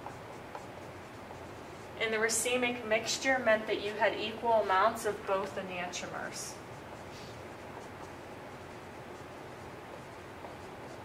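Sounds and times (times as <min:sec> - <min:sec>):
marker writing on whiteboard: 0:00.0 - 0:03.5, 0:06.5 - 0:11.0.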